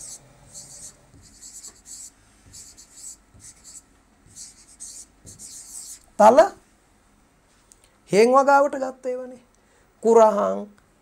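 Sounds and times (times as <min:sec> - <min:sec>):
pen scratching on touchscreen: 0:00.0 - 0:06.1.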